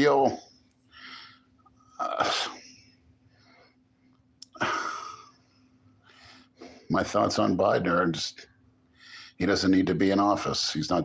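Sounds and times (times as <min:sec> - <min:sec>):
man sneezing: 0:02.0 - 0:02.7, 0:04.5 - 0:05.3.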